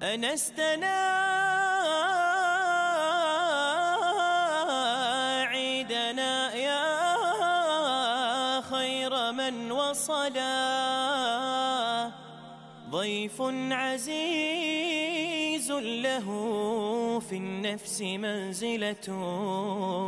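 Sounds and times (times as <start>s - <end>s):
man singing: 0.0s - 20.0s.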